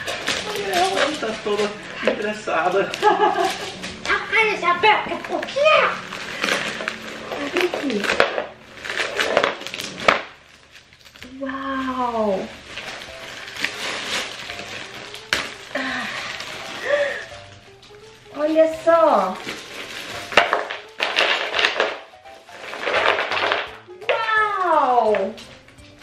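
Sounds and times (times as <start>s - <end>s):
plastic packaging crinkling: 0.0s - 26.0s.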